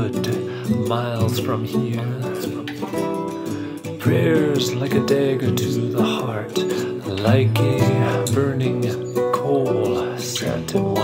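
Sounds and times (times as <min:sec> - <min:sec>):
acoustic guitar strumming: 0:00.0 - 0:11.0.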